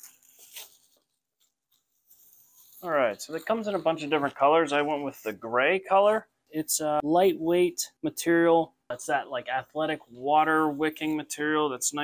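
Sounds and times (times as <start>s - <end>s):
man speaking: 2.8s - 12.0s.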